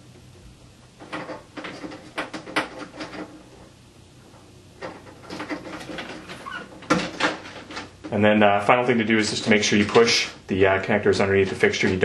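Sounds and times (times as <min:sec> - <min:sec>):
small clicks and rustles: 0:00.2 - 0:08.2.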